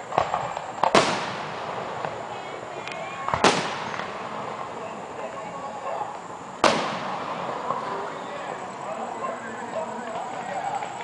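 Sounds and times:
firework bang: 0.0s - 5.0s, 6.6s - 8.6s
steady background noise: 0.0s - 11.0s.

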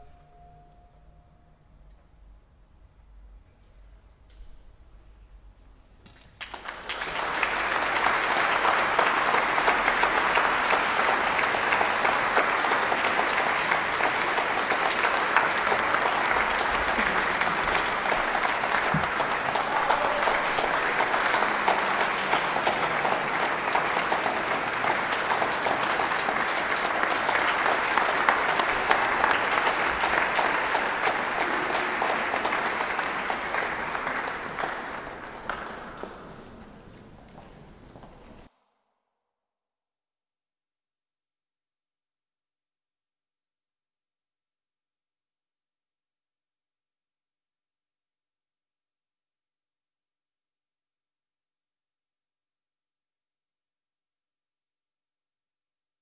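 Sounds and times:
audience applauding: 6.4s - 38.1s.

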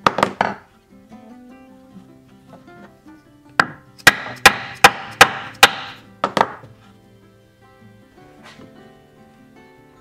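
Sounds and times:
quiet background music: 0.0s - 10.0s
mallet striking chisel through leather: 3.6s - 6.7s.

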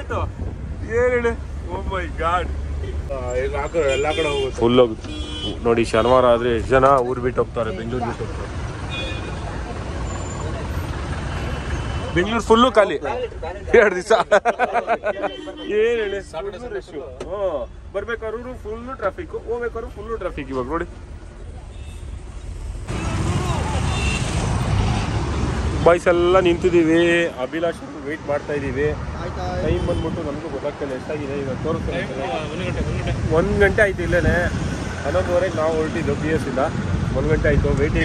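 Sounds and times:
minibus engine and road noise: 0.0s - 38.0s
passing vehicles traffic noise: 0.0s - 38.0s.

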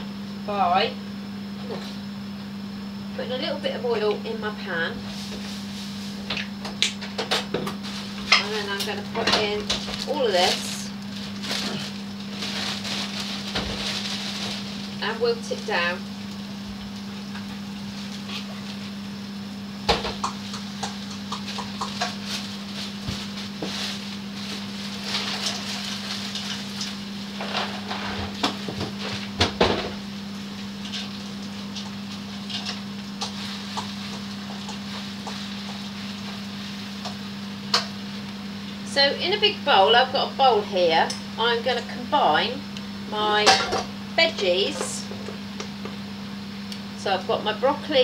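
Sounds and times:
low steady hum: 0.0s - 48.0s
leaves sizzling in a pan: 4.3s - 6.6s, 7.7s - 38.9s.

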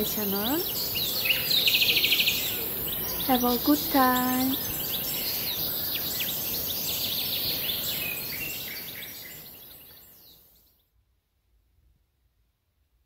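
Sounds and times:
birds chirping: 0.0s - 10.7s.

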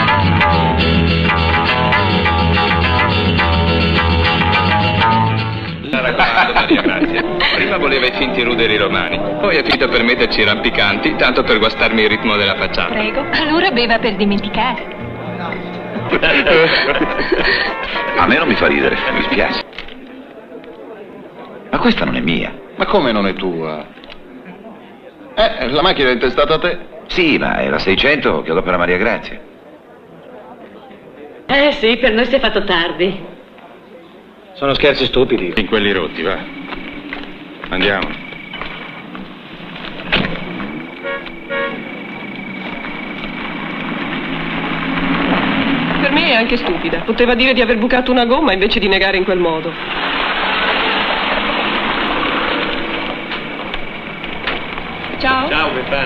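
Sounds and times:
background music: 0.0s - 19.6s
voices talking and laughing: 5.8s - 27.4s
car engine running: 35.2s - 47.8s, 49.8s - 56.0s
car horn toots: 40.0s - 44.3s.

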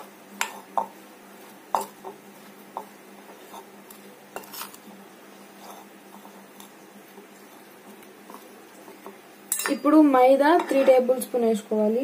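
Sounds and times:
spoon clinking and scraping bowl: 1.7s - 2.2s, 2.8s - 4.8s, 5.6s - 6.8s, 7.4s - 10.0s.

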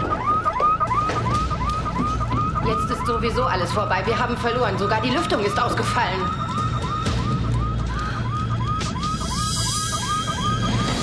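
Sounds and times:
electronic alarm chirping: 0.0s - 11.0s.

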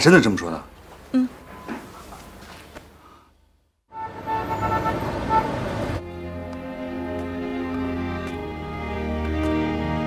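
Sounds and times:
car horn toots: 3.9s - 6.0s
traffic rushing: 3.9s - 9.1s.

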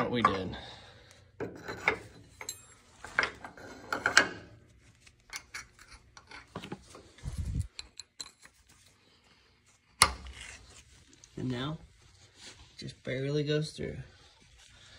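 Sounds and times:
metal pin clinking and scraping: 1.5s - 8.9s.

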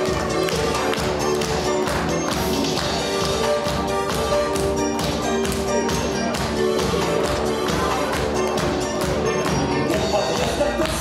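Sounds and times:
music with sustained notes: 0.0s - 11.0s
percussive beat: 0.0s - 11.0s.

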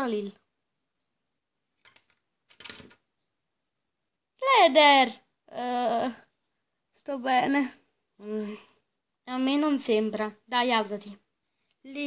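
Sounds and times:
plastic doll clattering on floor: 1.8s - 3.0s.

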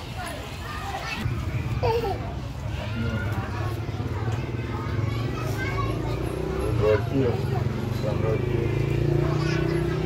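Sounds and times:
children's voices and chatter: 0.0s - 10.0s.

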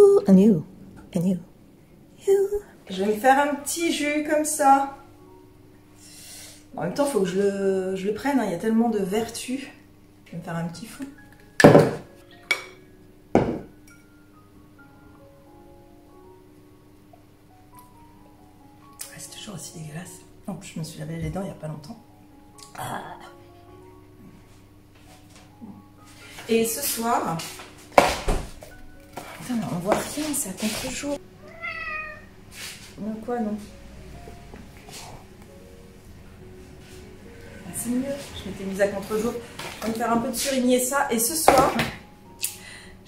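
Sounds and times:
soft background music: 0.0s - 43.0s
bottle and cup clinking: 13.4s - 14.0s
cat meowing: 31.4s - 32.3s
cat hissing: 31.4s - 32.8s.

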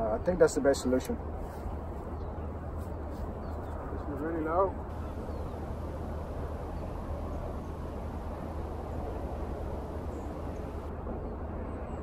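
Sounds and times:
wind on microphone: 4.8s - 12.0s.

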